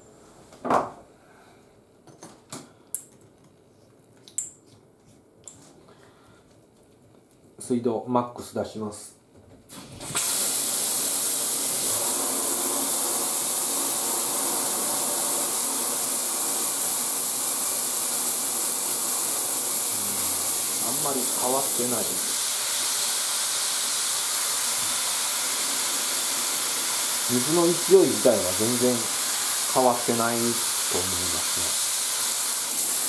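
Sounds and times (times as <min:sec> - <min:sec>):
shower spraying into bathtub: 0:09.7 - 0:33.0.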